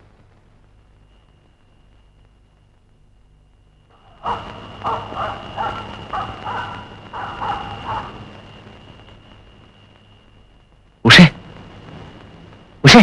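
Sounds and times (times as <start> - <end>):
faint high-pitched tone: 0.0 - 13.0
dog barking: 4.1 - 8.2.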